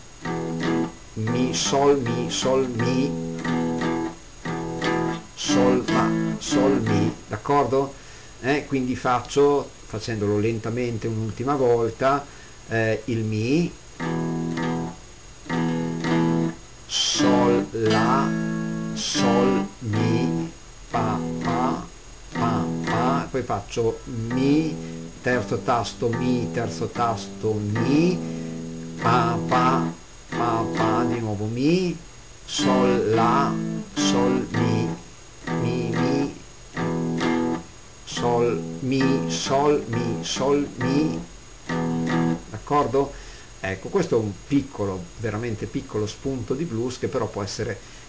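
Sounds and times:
guitar strumming chord: 0:00.2 - 0:07.2, 0:14.0 - 0:23.4, 0:24.1 - 0:31.3, 0:32.5 - 0:42.5.

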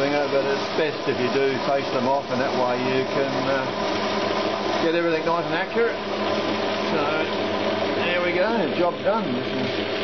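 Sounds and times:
metal lathe humming and whining: 0:00.0 - 0:10.0.

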